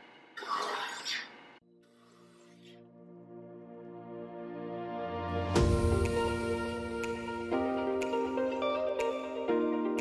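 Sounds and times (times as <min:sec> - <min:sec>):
soft background music: 0:01.6 - 0:10.0.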